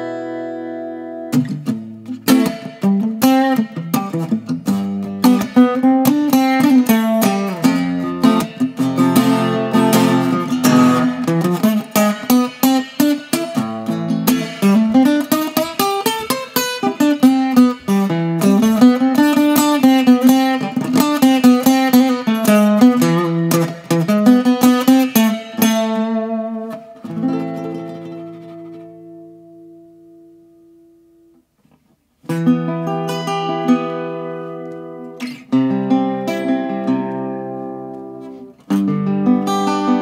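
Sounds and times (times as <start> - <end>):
acoustic guitar playing: 0.0 - 40.0.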